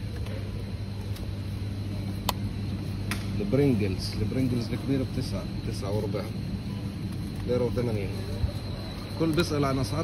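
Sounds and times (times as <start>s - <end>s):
store background hum: 0.0s - 10.0s.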